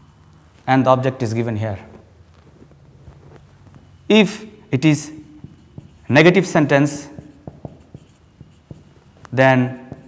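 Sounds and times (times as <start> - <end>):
marker writing on whiteboard: 4.1 - 10.0.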